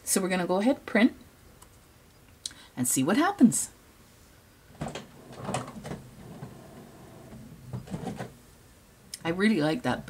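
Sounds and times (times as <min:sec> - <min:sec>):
inkjet printer running: 0:04.8 - 0:08.3.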